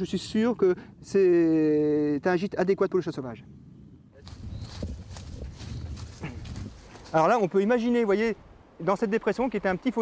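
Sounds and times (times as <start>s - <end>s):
footsteps crunching on leaves: 4.2s - 7.3s.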